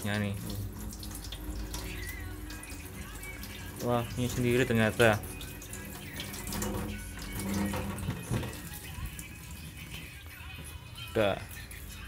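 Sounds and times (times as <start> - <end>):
tap water splashing in steel sink: 0.0 - 10.2.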